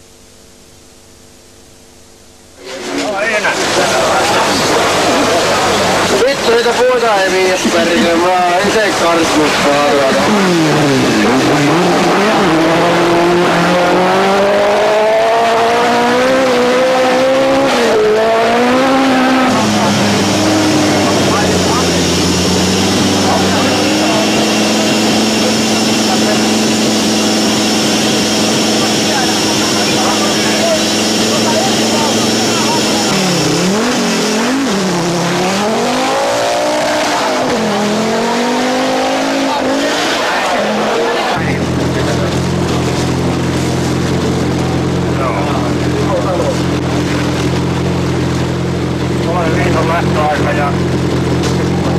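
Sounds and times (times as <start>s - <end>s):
rally car engine revving: 2.6s - 51.9s.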